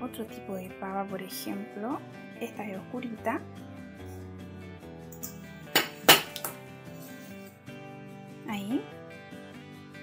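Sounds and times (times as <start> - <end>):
background music: 0.0 - 10.0
metal bowl clinking: 5.1 - 7.5.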